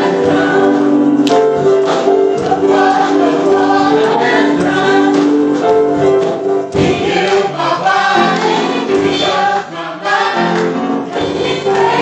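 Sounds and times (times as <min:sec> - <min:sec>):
piano: 0:00.0 - 0:12.0
voices singing together: 0:00.0 - 0:12.0.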